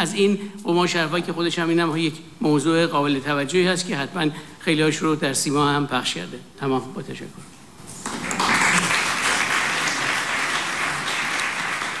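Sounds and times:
roomful of people applauding: 0:08.0 - 0:12.0.

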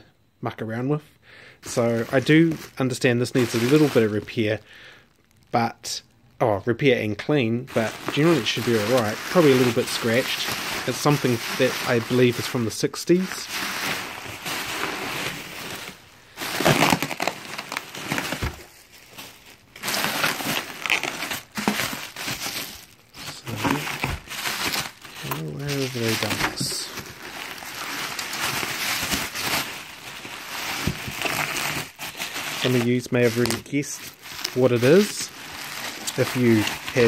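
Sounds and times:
bubble wrap crinkling: 0:01.6 - 0:05.7, 0:07.7 - 0:37.0.

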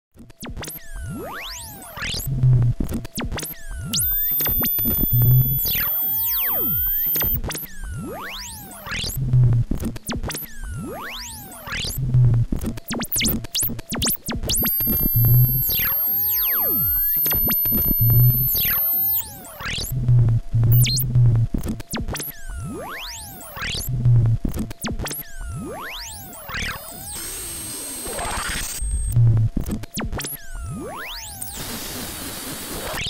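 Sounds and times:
looping sampler pitch glides: 0:00.4 - 0:27.2.

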